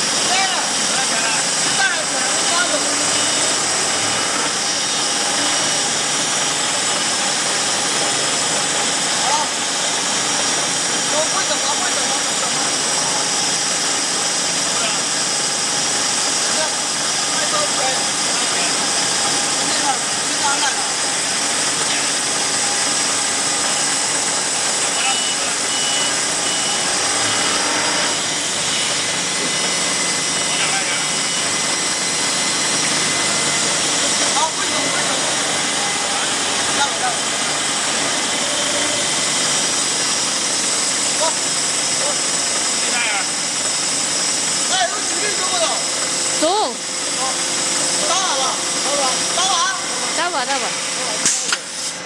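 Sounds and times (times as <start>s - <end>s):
workshop machinery hiss and rumble: 0.0s - 52.0s
short high tones: 25.0s - 28.2s.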